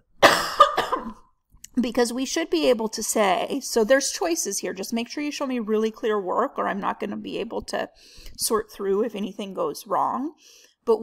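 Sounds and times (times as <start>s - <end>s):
person coughing: 0.2s - 1.3s.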